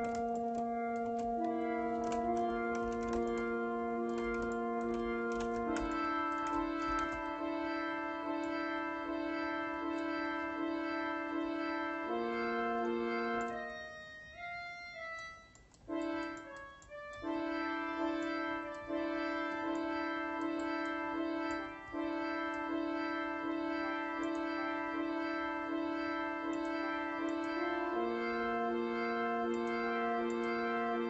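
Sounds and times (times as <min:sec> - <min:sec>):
synthesized keyboard melody: 0:00.0 - 0:31.0.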